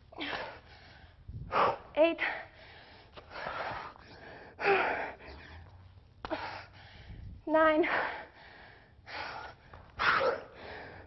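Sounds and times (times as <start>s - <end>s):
woman breathing hard: 0.0s - 11.0s.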